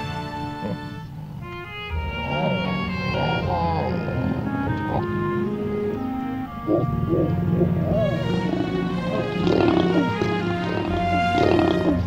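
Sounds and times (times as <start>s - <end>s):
background music with held notes: 0.0s - 12.0s
lions growling: 0.0s - 12.0s.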